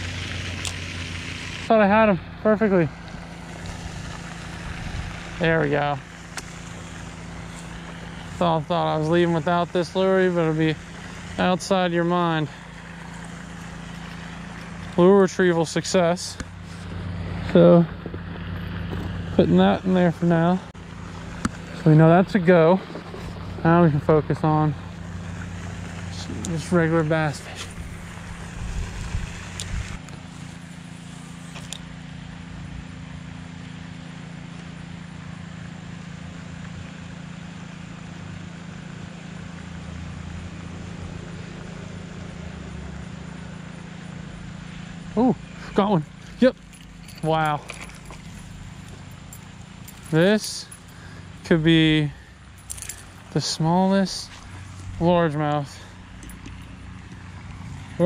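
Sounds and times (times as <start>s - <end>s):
fountain spray rushing: 0.0s - 47.6s, 49.4s - 58.0s
low steady hum: 0.0s - 58.0s.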